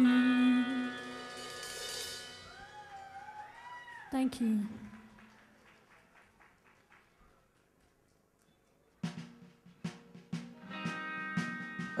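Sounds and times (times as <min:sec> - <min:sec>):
cymbal ringing: 0:00.7 - 0:02.5.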